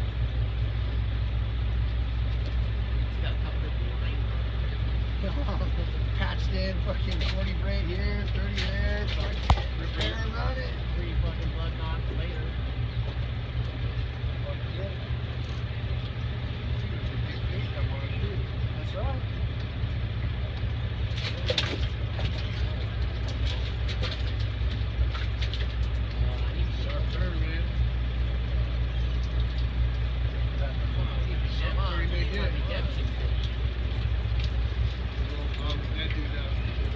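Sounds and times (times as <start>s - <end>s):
boat engine drone: 0.0s - 36.9s.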